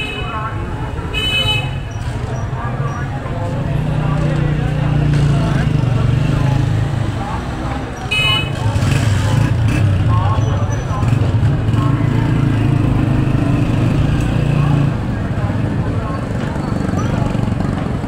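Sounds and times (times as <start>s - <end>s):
people talking: 0.0s - 18.0s.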